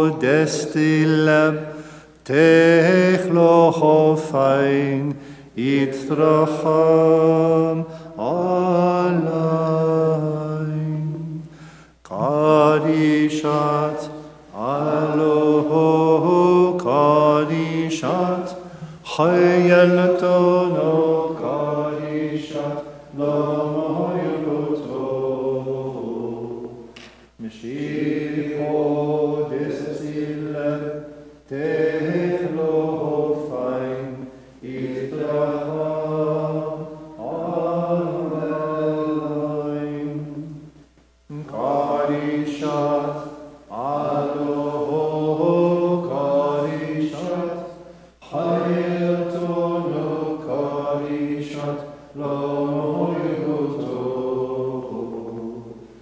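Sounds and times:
man chanting unaccompanied: 0.0 - 11.3.

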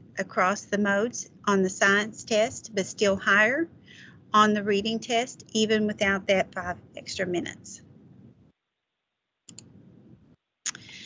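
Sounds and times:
computer mouse clicks: 9.5 - 9.8.

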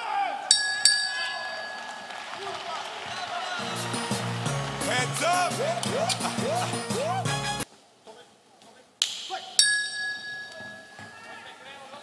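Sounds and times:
boxing bell ringing: 0.5 - 2.5, 9.6 - 11.4
hall noise: 0.5 - 7.6.

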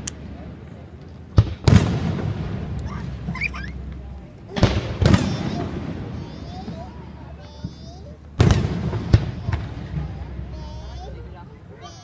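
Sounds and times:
low rumble of fireworks: 0.0 - 12.0
loud booming firework bursts: 1.3 - 11.4.

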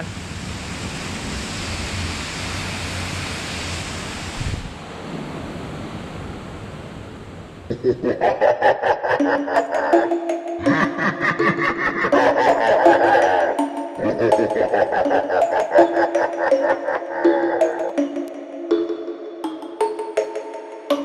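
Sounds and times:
steady rushing noise: 0.0 - 8.2
music with a quick beat: 9.6 - 11.5, 12.1 - 16.0, 17.7 - 21.0.

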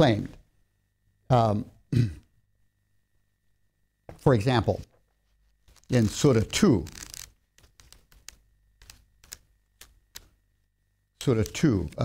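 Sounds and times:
book pages flicking and rustling: 5.6 - 10.4.

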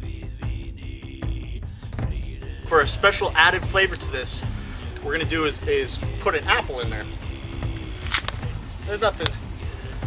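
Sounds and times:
soft background music: 0.4 - 10.0.

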